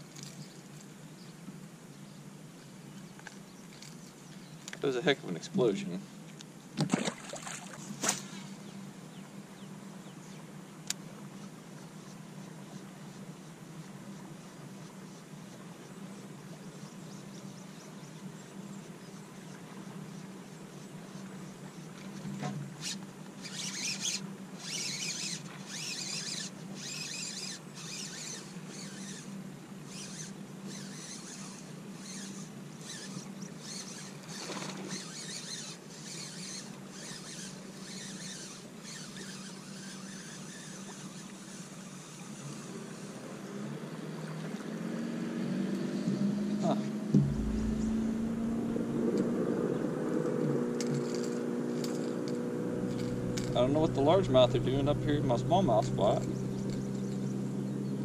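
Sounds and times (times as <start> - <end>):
motorboat engine hum: 7.1 - 58.0
single thump: 47.1 - 48.9.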